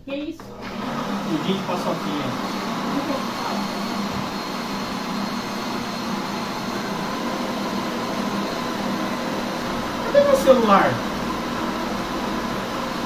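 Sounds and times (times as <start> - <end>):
blender running: 0.4 - 13.0.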